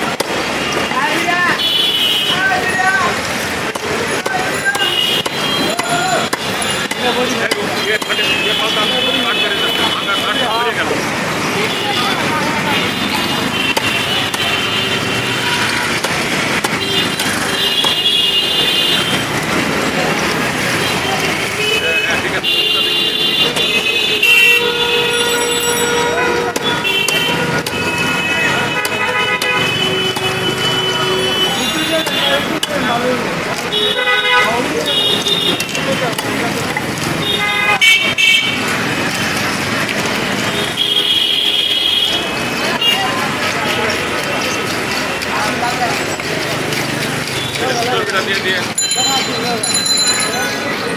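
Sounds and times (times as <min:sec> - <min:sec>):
vehicle horns honking: 0:01.4 - 0:03.0, 0:04.2 - 0:10.8, 0:11.5 - 0:19.9, 0:20.6 - 0:36.1, 0:37.1 - 0:39.0, 0:40.2 - 0:43.9
chatter of voices: 0:02.3 - 0:16.4, 0:29.8 - 0:40.6, 0:42.1 - 0:50.9
stick beating a cleaver: 0:15.8 - 0:18.0.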